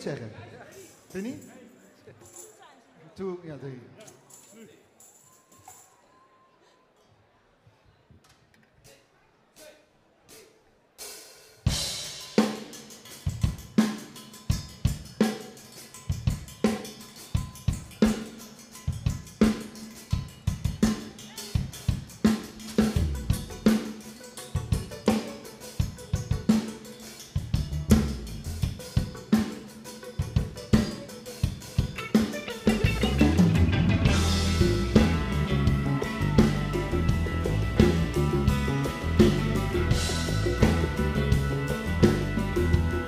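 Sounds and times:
drum kit playing a groove: 11.0s - 43.0s
band playing: 20.6s - 43.0s
low bass notes: 32.7s - 43.0s.

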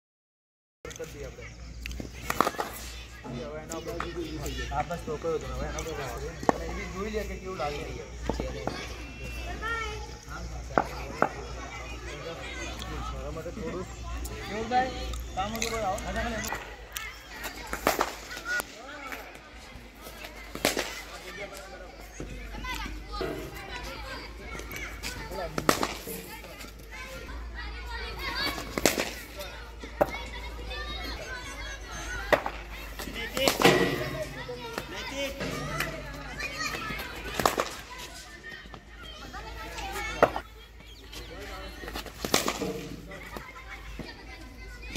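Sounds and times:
chatter of voices: 0.9s - 44.9s.

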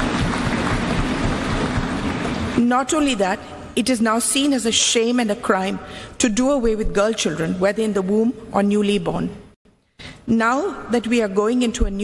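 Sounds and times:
audience applause: 0.0s - 2.6s.

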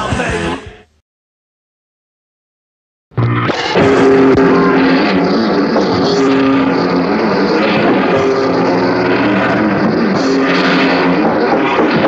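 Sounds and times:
distorted electric guitar chords: 3.1s - 12.0s.

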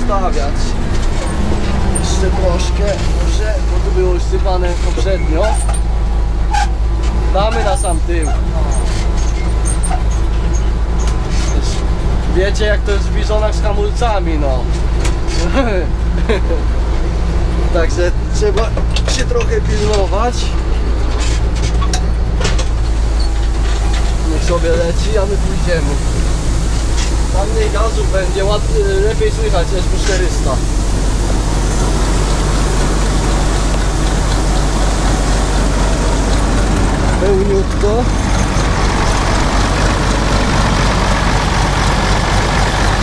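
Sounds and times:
diesel engine drone: 0.0s - 43.0s
man speaking: 1.9s - 5.6s, 27.3s - 30.7s, 37.1s - 38.2s.

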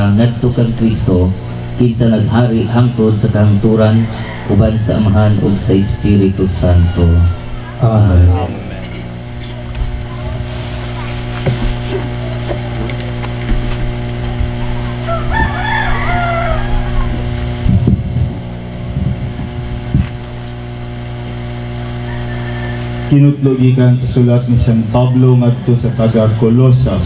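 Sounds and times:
low hum: 0.0s - 27.0s
rooster crowing: 2.6s - 11.1s, 14.6s - 17.6s, 21.3s - 23.4s, 24.6s - 27.0s.

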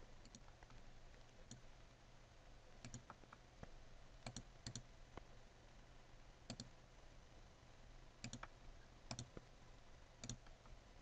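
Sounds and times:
faint low hum: 0.0s - 11.0s
computer mouse click: 0.2s - 0.8s, 2.8s - 3.4s, 4.2s - 4.9s, 6.5s - 6.7s, 8.2s - 8.5s, 9.1s - 9.4s, 10.2s - 10.6s.

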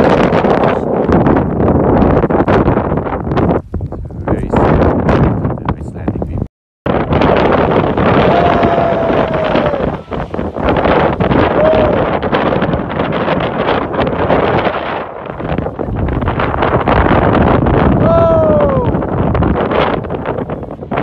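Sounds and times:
wind buffeting microphone: 0.0s - 21.0s
geyser erupting: 6.9s - 21.0s
person calling out: 18.0s - 18.9s.

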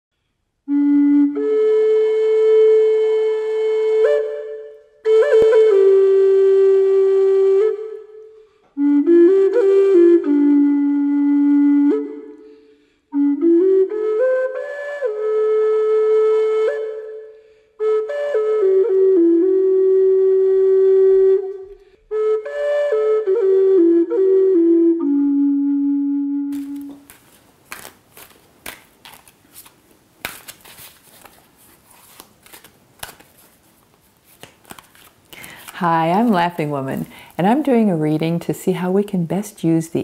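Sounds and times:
solo flute note: 0.7s - 27.0s.

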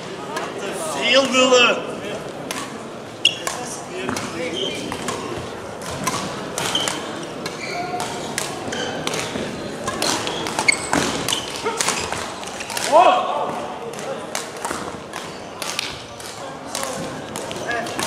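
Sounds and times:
rackets hitting shuttlecock: 2.4s - 18.0s
shoes squeaking on floor: 3.2s - 5.5s, 6.6s - 12.7s.

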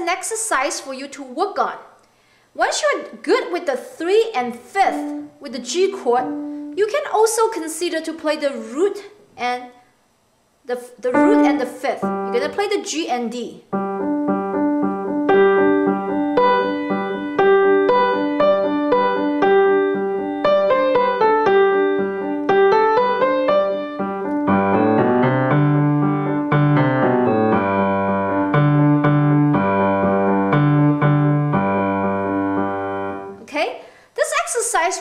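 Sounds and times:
grand piano played with both hands: 11.1s - 12.6s, 13.7s - 33.4s.

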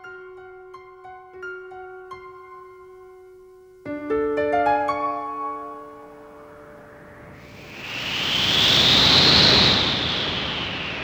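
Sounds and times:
whoosh of rushing noise: 5.9s - 11.0s.

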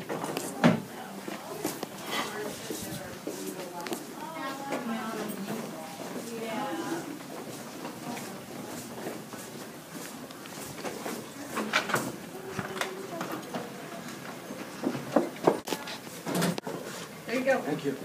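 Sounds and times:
faint murmured voices: 0.0s - 18.0s.

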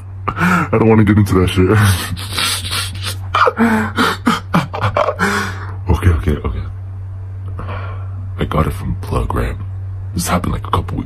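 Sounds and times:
low hum: 0.0s - 11.0s
man wheezing laughter: 1.8s - 5.8s.

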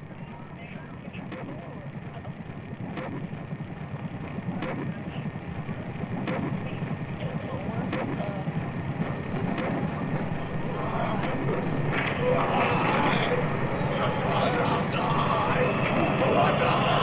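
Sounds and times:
muffled rumbling noise: 1.0s - 17.0s.

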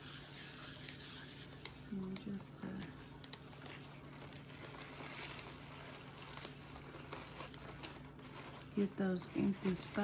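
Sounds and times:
paper shred rustling: 0.0s - 10.0s.

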